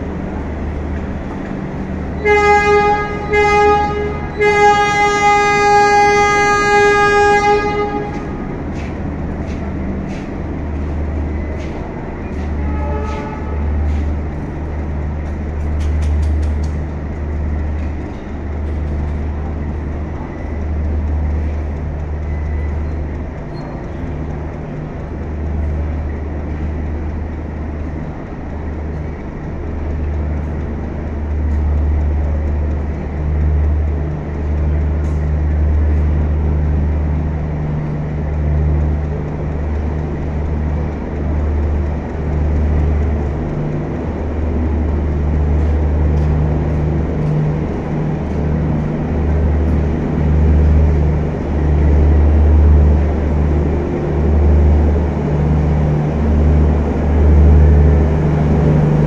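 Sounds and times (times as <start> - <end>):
train coaches rumbling past: 0.0 - 59.0.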